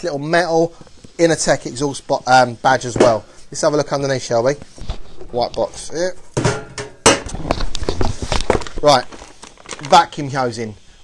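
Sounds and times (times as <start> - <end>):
cardboard scraping and rustling: 7.6 - 9.9.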